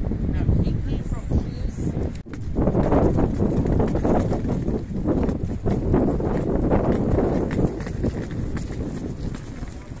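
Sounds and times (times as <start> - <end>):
wind on microphone: 0.0 - 10.0
footsteps on paved path: 2.0 - 10.0.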